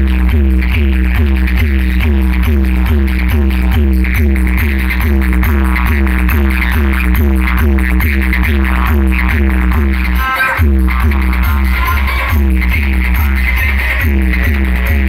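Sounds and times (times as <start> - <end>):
loud bass-heavy dance music: 0.0 - 15.0.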